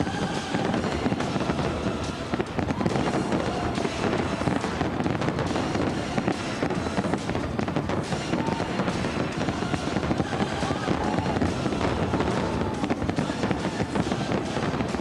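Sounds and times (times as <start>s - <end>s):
fireworks bursting and crackling: 0.0s - 15.0s
music soundtrack: 0.0s - 15.0s.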